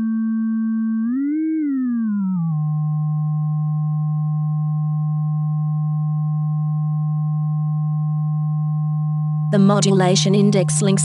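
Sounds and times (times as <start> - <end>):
low electronic sine tone: 0.0 - 11.0.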